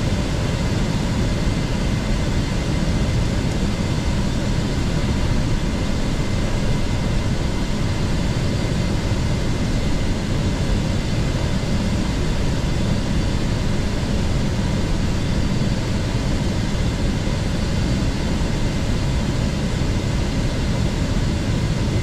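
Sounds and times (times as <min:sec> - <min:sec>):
cabin airflow and engine noise: 0:00.0 - 0:22.0.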